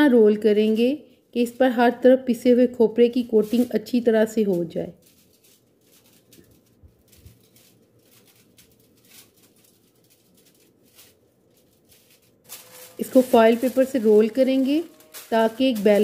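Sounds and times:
aluminium foil crinkling: 0:00.0 - 0:16.0.

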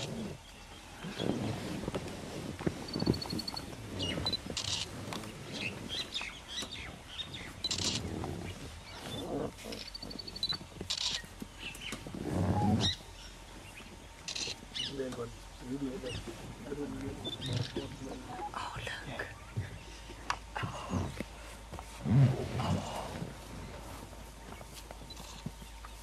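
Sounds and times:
birds chirping: 0:00.0 - 0:21.7, 0:22.7 - 0:26.0
buzzy bird calls: 0:02.8 - 0:20.0
high bird trills: 0:09.8 - 0:13.3
low rumble: 0:12.0 - 0:14.2.

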